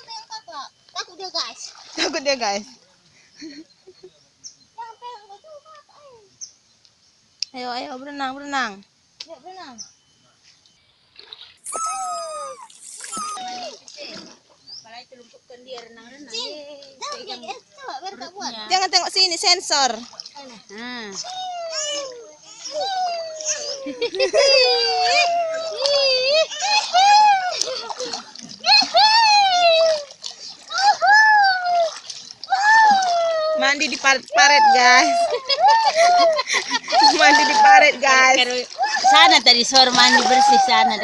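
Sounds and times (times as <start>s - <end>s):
water splashing: 0.0s - 3.0s, 11.1s - 15.2s, 16.5s - 41.0s
small child crying: 11.7s - 13.8s, 21.2s - 24.0s, 24.7s - 27.9s, 28.6s - 30.1s, 30.7s - 33.7s, 34.5s - 37.7s
toddler wailing: 11.7s - 13.8s, 21.2s - 24.0s, 30.7s - 33.7s.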